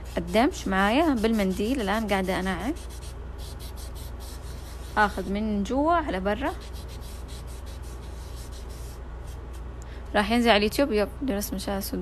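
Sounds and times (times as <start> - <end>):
tissue rubbing charcoal on paper: 0.0 - 5.5, 6.4 - 9.6
steady low hum: 0.0 - 12.0.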